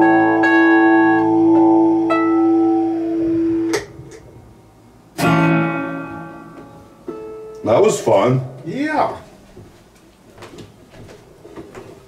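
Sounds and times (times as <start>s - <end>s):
guitar chord ringing: 0.0s - 8.7s.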